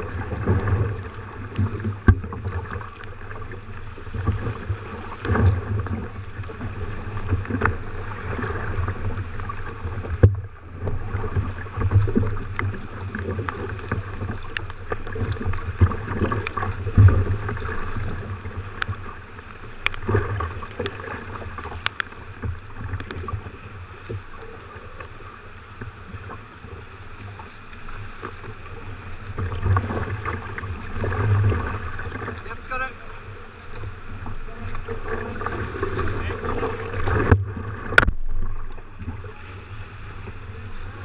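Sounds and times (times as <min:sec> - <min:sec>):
water splashing against kayak hull: 0:00.0 - 0:41.0.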